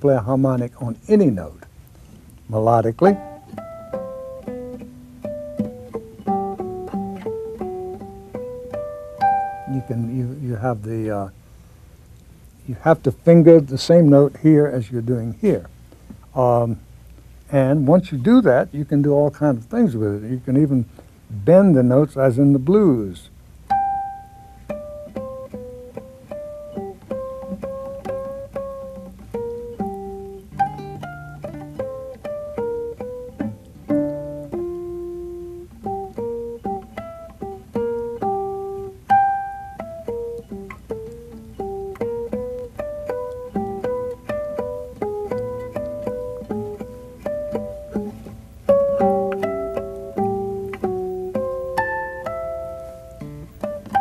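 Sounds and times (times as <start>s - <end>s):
classical guitar harmonics melody: 0.0s - 16.8s, 21.7s - 54.0s.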